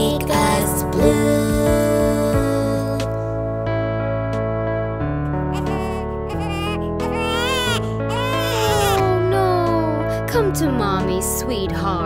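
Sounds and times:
children's song backing track: 0:00.0 - 0:03.7, 0:05.6 - 0:12.0
animated baby crying: 0:05.5 - 0:09.3.

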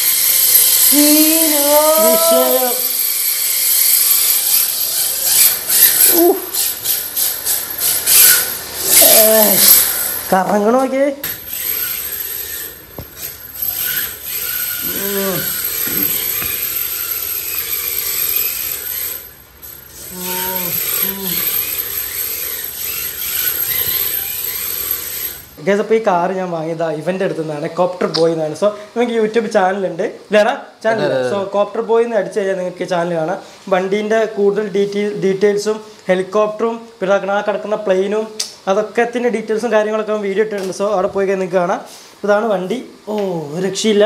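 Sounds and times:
toy car motor whirring: 0:00.0 - 0:25.6.

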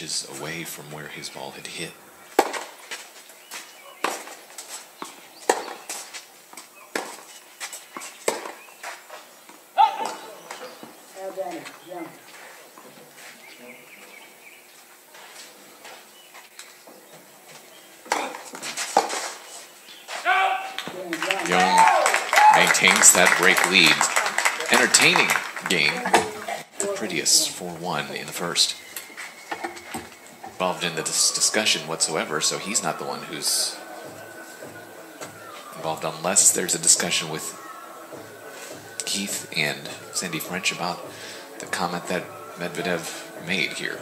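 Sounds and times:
voices: 0:00.0 - 0:02.5, 0:09.6 - 0:14.3, 0:20.1 - 0:44.0
tennis ball bouncing on court: 0:02.4 - 0:02.7, 0:04.0 - 0:04.4, 0:05.0 - 0:05.9, 0:06.9 - 0:07.2, 0:08.2 - 0:08.6
racket striking tennis ball: 0:02.4 - 0:03.0, 0:04.0 - 0:04.4, 0:05.0 - 0:06.0, 0:06.9 - 0:07.3, 0:08.2 - 0:08.6
audience applause: 0:20.7 - 0:26.7.

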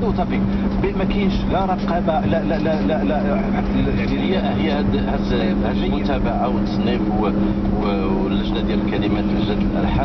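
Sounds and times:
car engine hum and rumble: 0:00.0 - 0:10.0
man talking on radio: 0:00.0 - 0:10.0.

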